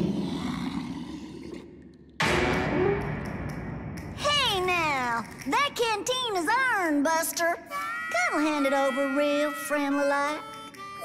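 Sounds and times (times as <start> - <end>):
deep monster roar: 0.0 - 1.6.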